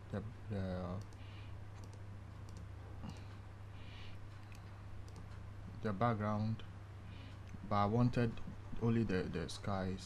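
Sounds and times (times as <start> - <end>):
steady low hum: 0.0 - 10.0
computer mouse clicks: 1.0 - 3.4, 4.3 - 5.4.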